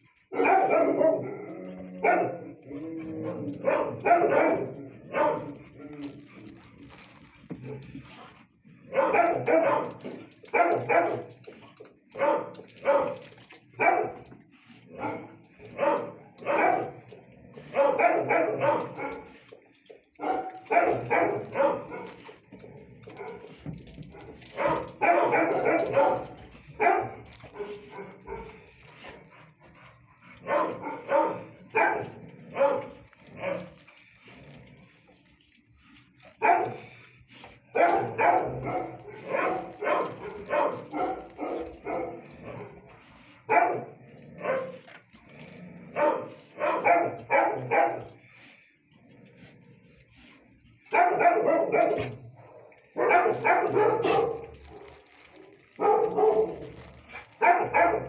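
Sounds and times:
dogs barking: 0:00.0 - 0:06.3, 0:08.8 - 0:34.1, 0:36.3 - 0:48.5, 0:50.8 - 0:58.0.

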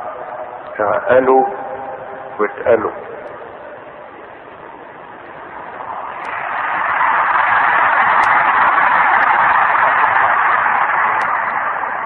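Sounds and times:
audience applauding: 0:06.3 - 0:12.0.

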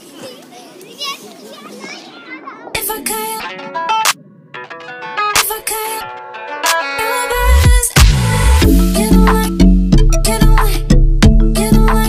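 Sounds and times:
children chattering and calling out: 0:00.0 - 0:05.0.

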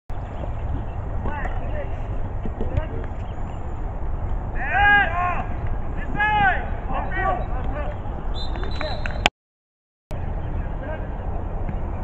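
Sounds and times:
wind rumble on microphone: 0:00.1 - 0:09.3.

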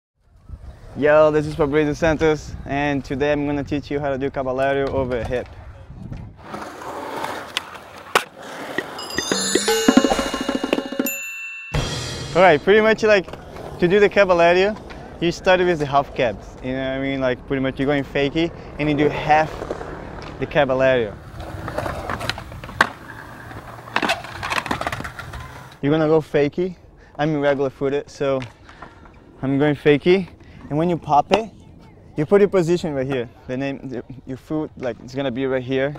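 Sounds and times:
skateboard wheels rolling on concrete: 0:00.2 - 0:11.5, 0:12.7 - 0:26.4
jingle of bright ringing tones: 0:09.0 - 0:12.6
skateboard clack: 0:21.2 - 0:25.8.

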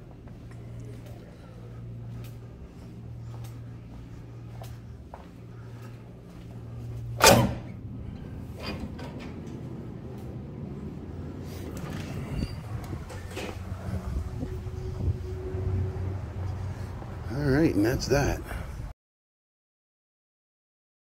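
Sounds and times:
street traffic rumble: 0:00.0 - 0:18.9
door push bar clunking: 0:07.2 - 0:07.8.

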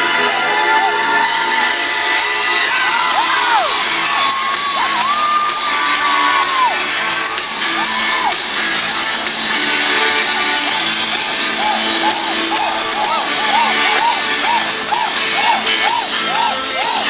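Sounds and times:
audience cheering: 0:00.0 - 0:09.3, 0:10.2 - 0:17.0
high whoops: 0:02.6 - 0:06.8, 0:11.6 - 0:17.0.

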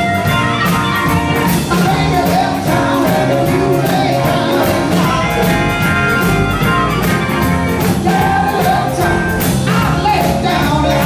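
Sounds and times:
electric guitar: 0:00.0 - 0:11.0
steady drum beat: 0:00.0 - 0:11.0.

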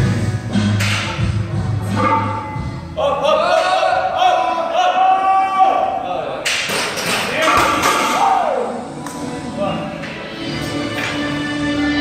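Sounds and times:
music with singing: 0:00.0 - 0:03.8, 0:07.9 - 0:12.0.

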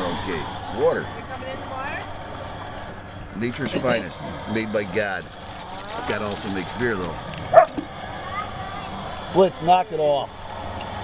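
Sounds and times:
dog barking: 0:07.5 - 0:07.8.

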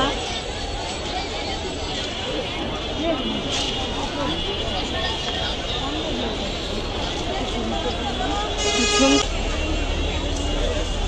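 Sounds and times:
crowd chatter: 0:00.0 - 0:11.0
vehicle horn toot: 0:08.4 - 0:09.8.

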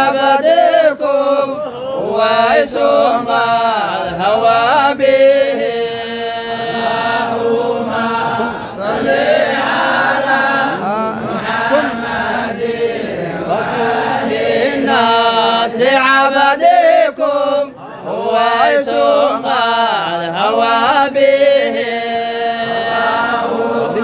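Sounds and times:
men chanting devotional song: 0:00.0 - 0:24.0.

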